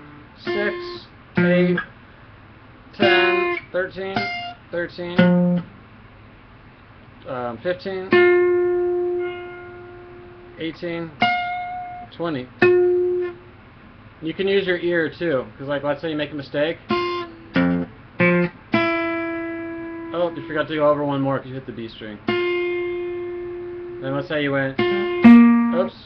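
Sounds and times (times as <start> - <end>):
acoustic guitar plucked notes: 0.0 - 1.9, 3.0 - 5.7, 8.1 - 13.5, 16.8 - 20.8, 22.2 - 26.0
plucked acoustic guitar note: 3.0 - 4.6, 5.2 - 5.7, 16.9 - 20.7, 24.8 - 26.0.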